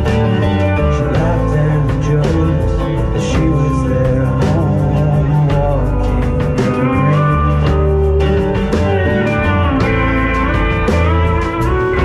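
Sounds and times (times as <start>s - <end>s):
drum kit: 0.0s - 12.0s
guitars: 0.0s - 12.0s
live band playing: 0.0s - 12.0s.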